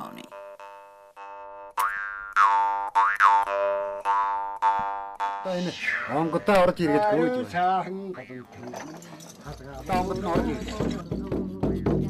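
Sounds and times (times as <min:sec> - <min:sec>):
jaw harp drone: 0:00.0 - 0:06.8.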